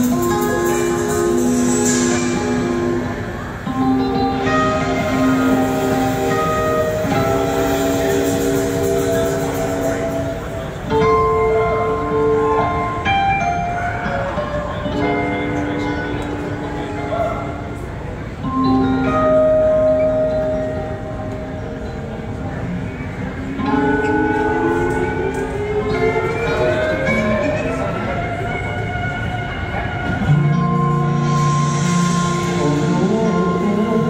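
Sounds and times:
electric guitar chords: 0:00.0 - 0:34.0
live rock band playing chords: 0:00.0 - 0:34.0.

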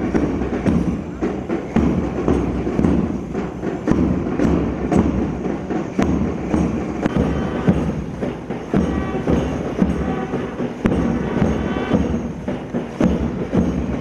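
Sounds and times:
higher march tune: 0:00.0 - 0:14.0
steady march drum beat: 0:00.0 - 0:14.0.

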